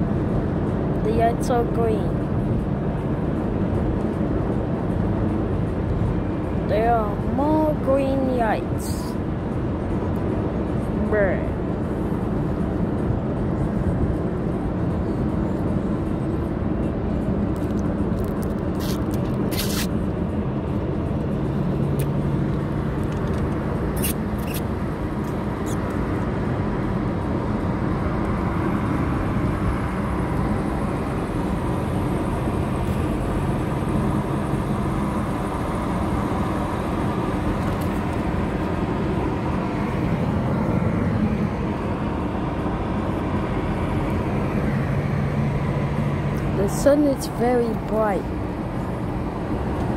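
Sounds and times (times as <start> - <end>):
car cabin road and engine noise: 0.0 - 49.9.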